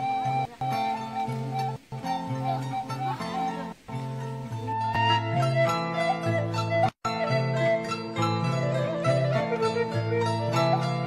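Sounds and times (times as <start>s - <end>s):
plucked string passage: 0.0s - 5.8s
instrumental music with bass line: 0.0s - 11.0s.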